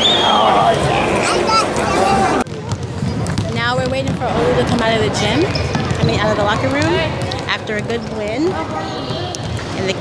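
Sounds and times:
basketball bouncing on hardwood: 2.4s - 10.0s.

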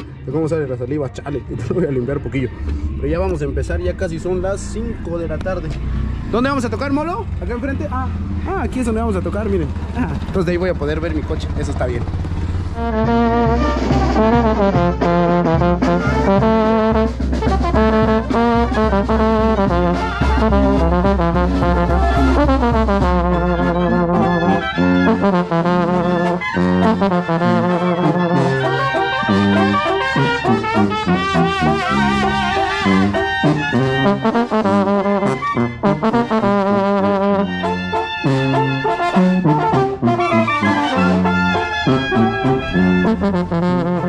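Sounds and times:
low rumble: 0.0s - 24.8s
brass band playing: 12.6s - 44.0s
trombone loud and close: 12.7s - 44.0s.

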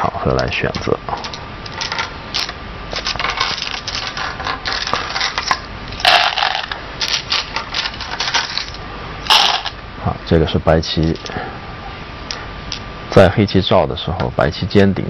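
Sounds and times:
game stones clicking and clattering: 1.2s - 9.7s
stones rattling into wooden bowl: 1.2s - 9.8s.

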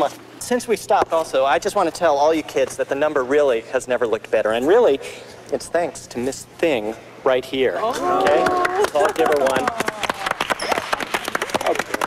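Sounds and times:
small group clapping: 8.2s - 12.0s.

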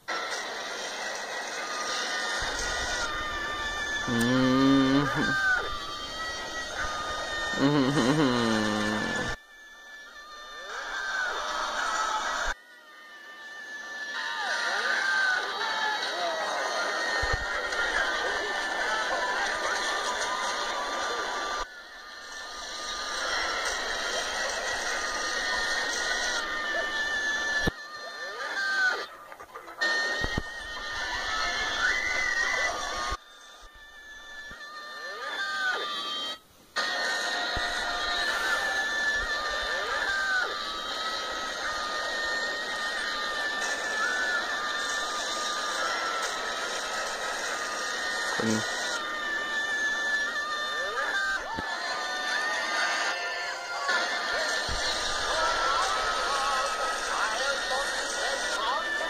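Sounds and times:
television music through speaker: 0.0s - 59.0s.

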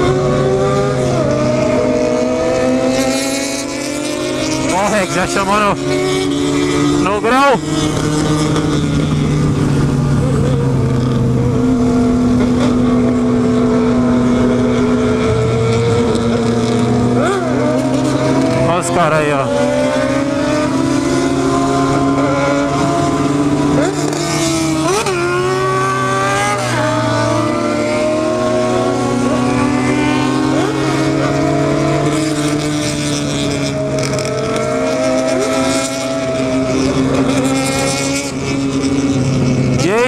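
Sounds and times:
motorcycle engine cruising: 0.0s - 40.0s.

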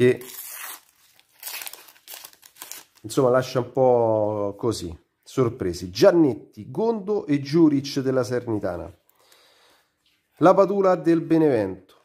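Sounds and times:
wrapper crinkling as torn open: 0.0s - 3.2s.

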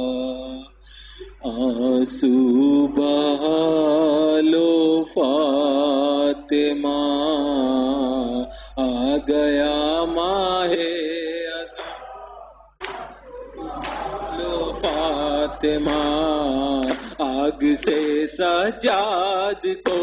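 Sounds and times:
man chanting a lament: 1.3s - 20.0s.

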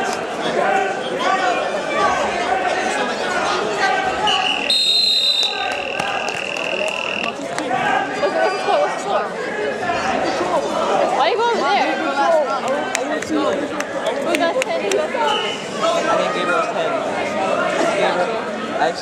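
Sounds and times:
crowd chatter: 0.0s - 19.0s
buzzer high tone: 4.5s - 7.4s.

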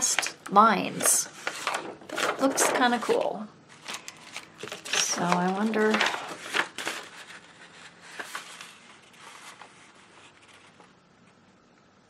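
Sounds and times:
paper rustling and crinkling: 0.9s - 11.4s.

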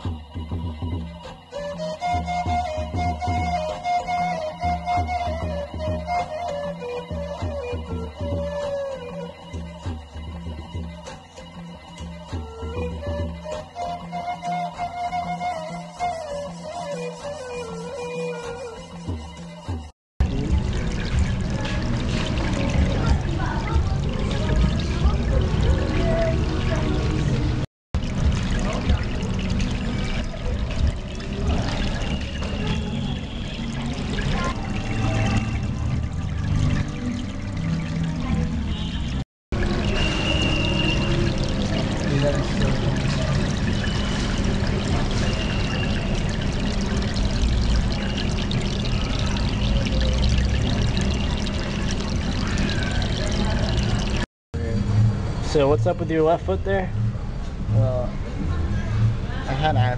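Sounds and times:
background music: 0.0s - 53.4s
water pouring and bubbling: 20.2s - 54.3s.

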